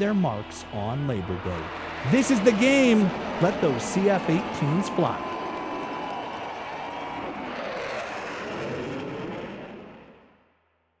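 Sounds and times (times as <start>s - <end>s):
fighter jets flying overhead: 1.0s - 10.3s.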